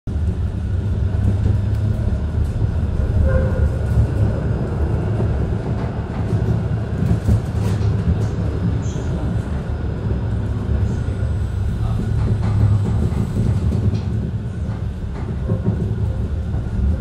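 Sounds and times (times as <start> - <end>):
tram rumbling on rails: 0.1 - 17.0.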